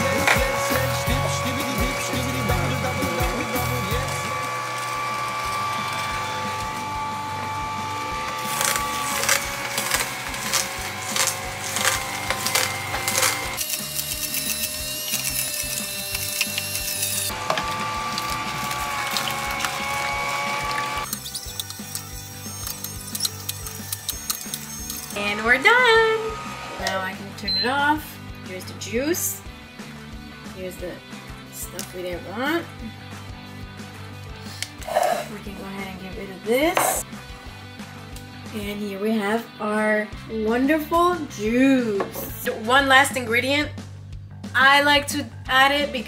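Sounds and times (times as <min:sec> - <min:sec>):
juicer crushing produce: 0:00.0 - 0:27.1
background music low sustained notes: 0:00.0 - 0:46.0.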